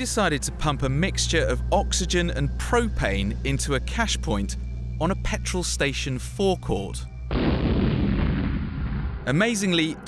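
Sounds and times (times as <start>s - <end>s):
rumble: 0.1s - 10.0s
loud explosion blast: 7.3s - 9.3s.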